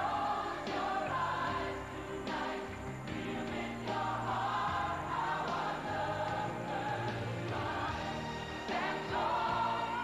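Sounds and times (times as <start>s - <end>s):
choir singing in unison: 0.0s - 10.0s.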